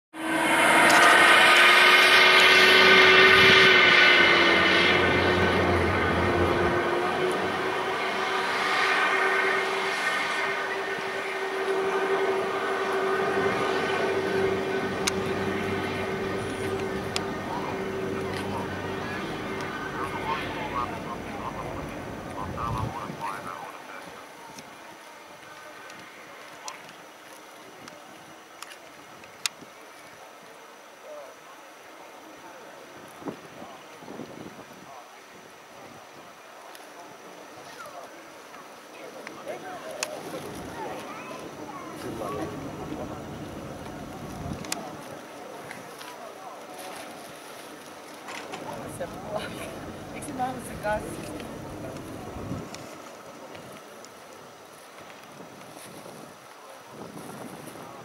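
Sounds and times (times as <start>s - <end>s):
jet engine whine: 0.2s - 24.8s, 39.6s - 45.4s, 47.8s - 54.1s.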